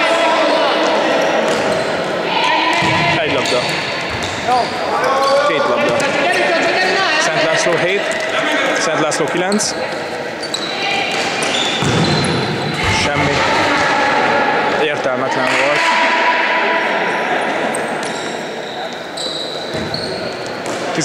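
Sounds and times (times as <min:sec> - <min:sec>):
players' voices calling: 0:00.0 - 0:21.0
sneakers squeaking: 0:01.2 - 0:13.8, 0:17.1 - 0:21.0.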